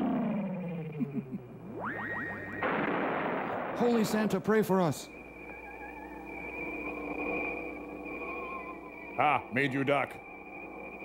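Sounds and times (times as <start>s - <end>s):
soft wavering tones: 0.0s - 2.7s, 3.9s - 11.0s
high electronic whine: 0.0s - 11.0s.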